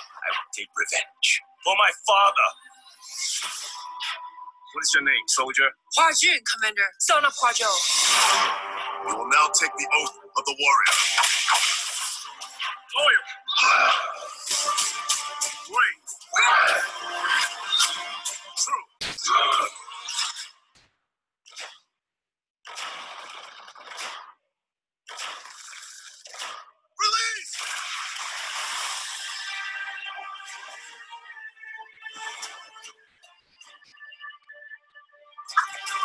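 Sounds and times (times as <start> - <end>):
film trailer music: 0.0 - 20.7, 27.4 - 36.0
man shouting: 15.7 - 17.0, 27.0 - 27.5.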